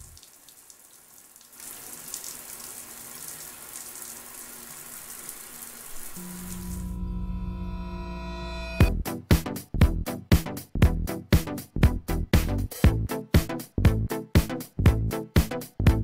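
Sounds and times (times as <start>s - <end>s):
low electronic drone: 6.2s - 9.0s.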